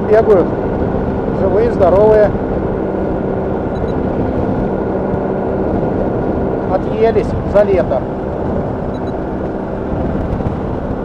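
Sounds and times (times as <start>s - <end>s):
aircraft engine and propeller drone: 0.0s - 11.0s.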